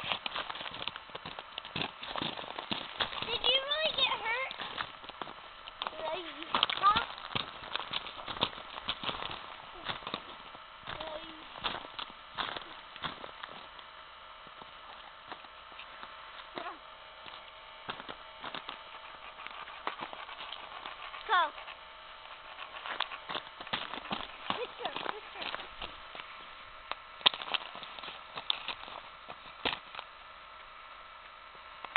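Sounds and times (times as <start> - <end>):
children's voices: 3.2 - 4.6, 21.2 - 21.6.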